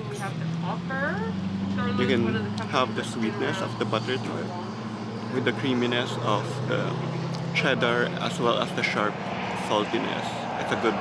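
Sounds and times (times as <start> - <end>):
vehicle engine idling: 0.0 - 9.3.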